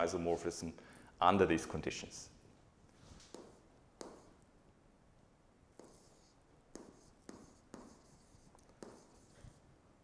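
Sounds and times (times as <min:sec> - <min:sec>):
stylus tapping on tablet screen: 0:03.3 - 0:04.3.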